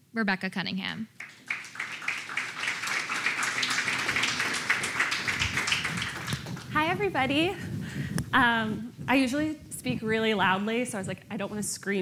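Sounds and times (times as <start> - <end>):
audience applauding: 1.2 - 6.8.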